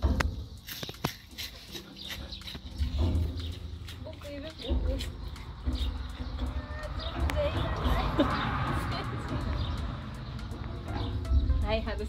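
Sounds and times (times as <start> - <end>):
goats munching leaves: 0.6 - 6.4
low rumble: 2.8 - 12.0.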